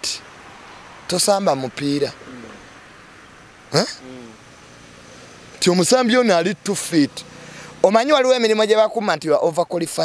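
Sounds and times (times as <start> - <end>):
man saying huh: 2.2 - 2.6, 3.7 - 4.4.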